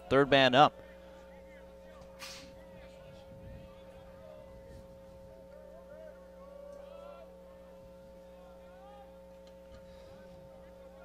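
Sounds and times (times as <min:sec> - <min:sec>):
steady hum: 0:00.0 - 0:11.0
short hiss: 0:02.2 - 0:02.5.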